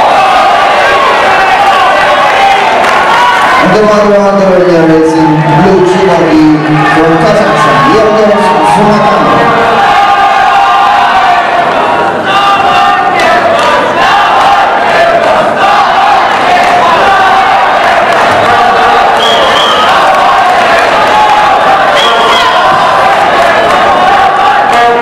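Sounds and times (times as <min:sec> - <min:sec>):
crowd shouting and cheering: 0:00.0 - 0:25.0.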